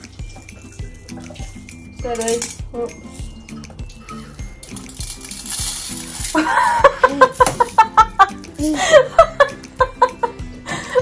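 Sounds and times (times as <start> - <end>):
background music with steady beat: 0.0 - 11.0
sprinkles shaken from a jar: 3.9 - 7.7.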